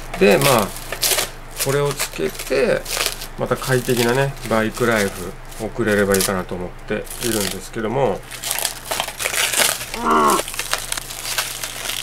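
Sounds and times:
plastic packaging crinkling: 0:08.3 - 0:12.0
short vocal sound: 0:09.9 - 0:10.4.

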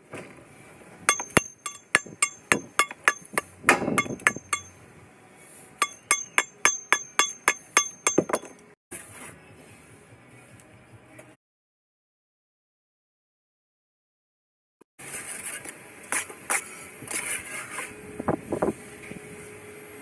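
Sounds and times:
steel tool tapping brick: 0:01.1 - 0:04.8, 0:05.8 - 0:08.6.

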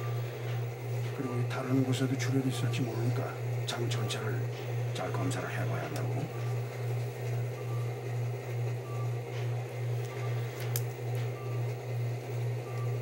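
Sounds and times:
loud pulsing low hum: 0:00.0 - 0:13.0.

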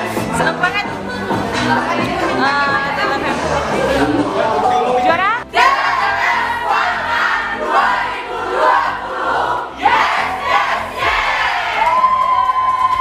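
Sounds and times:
young people shouting and cheering: 0:00.3 - 0:13.0.

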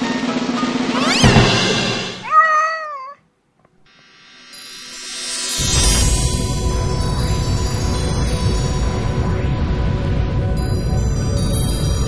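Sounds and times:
cat meowing: 0:02.2 - 0:03.2
background music: 0:04.5 - 0:12.0.

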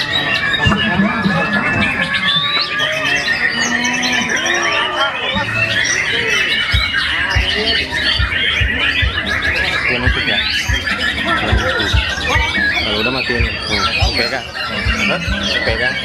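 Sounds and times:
chorus of songbirds: 0:00.0 - 0:16.0
dull low thumps: 0:06.7 - 0:16.0.

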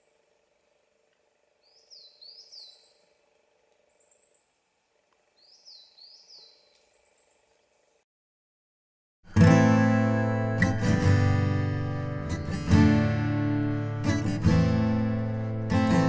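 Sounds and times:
faint steady hum: 0:00.0 - 0:08.0
sweeping whistled bird notes: 0:01.6 - 0:03.1, 0:05.4 - 0:07.5.

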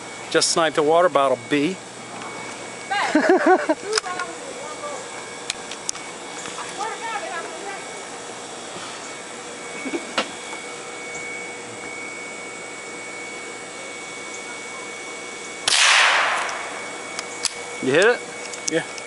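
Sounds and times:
gunshot with echo: 0:15.7 - 0:16.5.

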